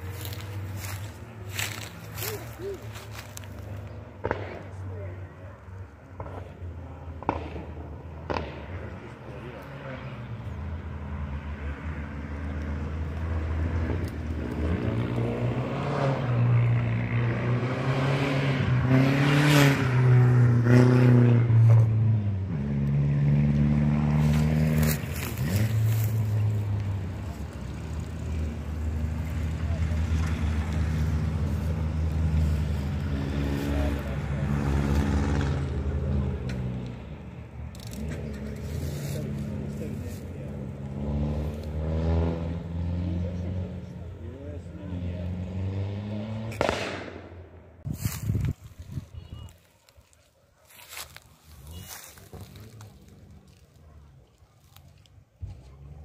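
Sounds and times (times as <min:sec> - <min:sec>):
race car engines passing: 0:00.0 - 0:56.0.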